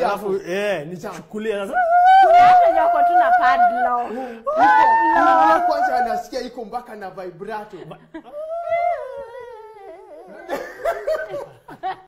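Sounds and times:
people laughing: 7.7 - 12.0.

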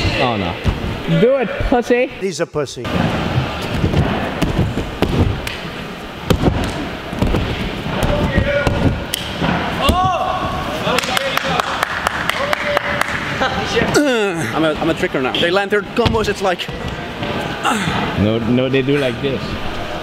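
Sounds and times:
bare feet thudding on airtrack: 3.3 - 5.6.

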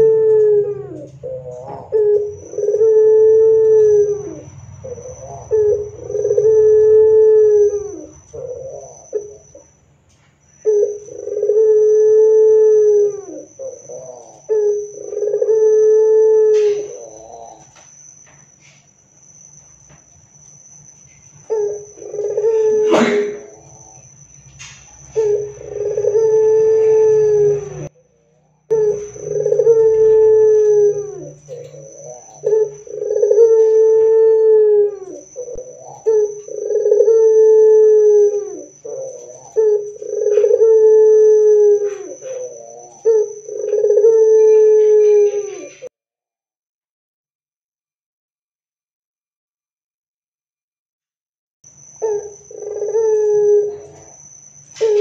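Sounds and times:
dove cooing: 0.0 - 9.9, 10.5 - 18.2, 21.3 - 45.9, 52.0 - 55.0.

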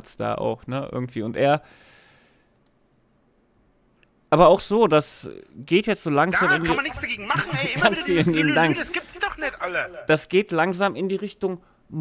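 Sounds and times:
computer mouse click: 2.5 - 2.8.

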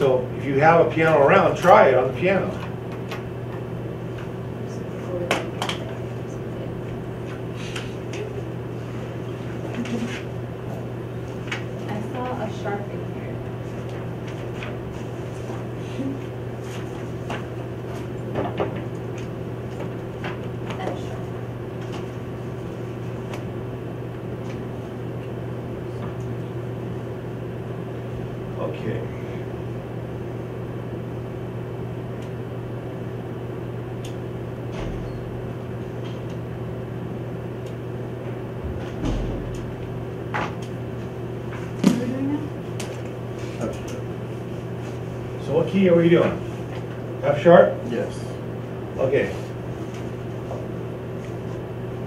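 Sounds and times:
low room hum: 0.0 - 52.0.

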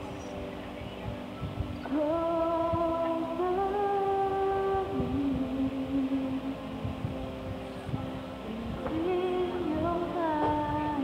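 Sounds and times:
quiet backing music: 0.0 - 11.0
woman singing long note: 1.9 - 6.8, 8.4 - 11.0.

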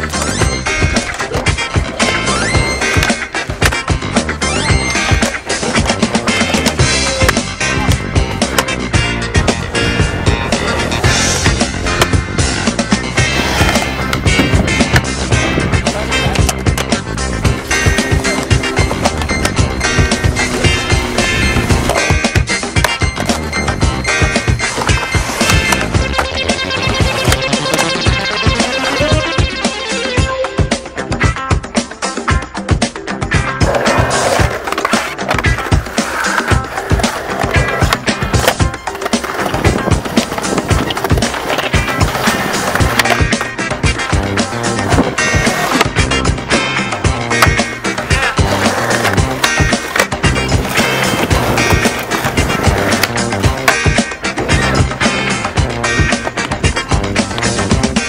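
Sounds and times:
music track: 0.0 - 32.4, 33.1 - 58.0
skateboard wheels rolling on concrete: 0.0 - 58.0.

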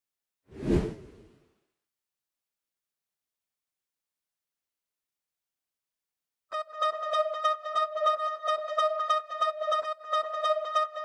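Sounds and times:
whoosh sound effect: 0.5 - 1.3.

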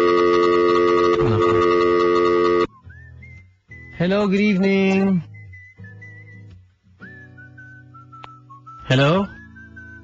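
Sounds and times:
loud electronic chord: 0.0 - 2.7.

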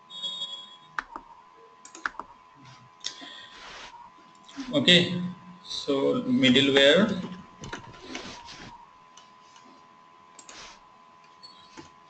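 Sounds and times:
high ringing tone: 0.0 - 1.0
faint high hum: 0.0 - 12.0
sharp clicks: 1.8 - 2.3.

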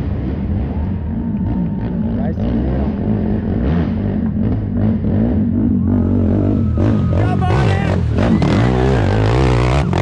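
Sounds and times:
atv engine revving: 0.0 - 10.0.

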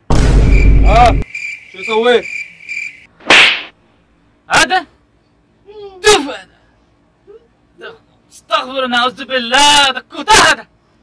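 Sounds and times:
loud noisy swish: 3.2 - 3.7.

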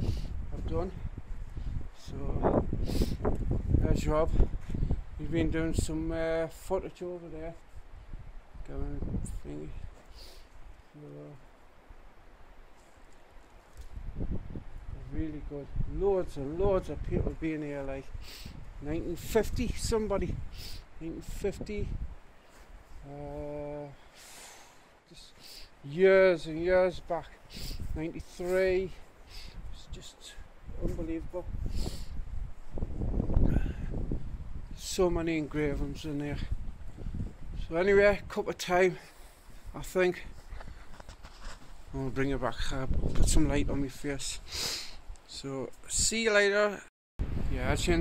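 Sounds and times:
wind buffeting microphone: 0.0 - 6.6, 7.8 - 10.8, 13.7 - 23.9, 25.9 - 38.5, 39.5 - 44.4, 47.2 - 48.0
faint ticks and rustles: 12.7 - 14.0, 40.4 - 42.3.

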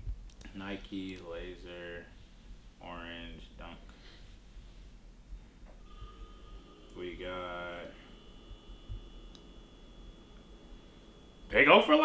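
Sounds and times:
faint high whine: 0.0 - 12.0.

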